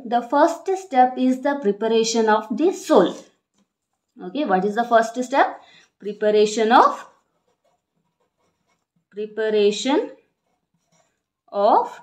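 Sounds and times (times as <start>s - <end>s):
marker pen writing on paper: 6.0s - 9.2s, 10.2s - 11.4s.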